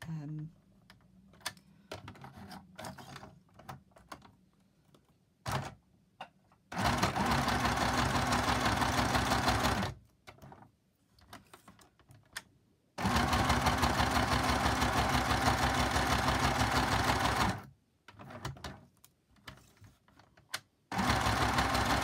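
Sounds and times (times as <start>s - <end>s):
faint handling sounds: 0.6s - 5.3s, 10.4s - 12.3s, 18.9s - 20.6s
sewing machine stitching: 6.7s - 10.0s, 13.0s - 18.7s, 20.9s - 22.0s.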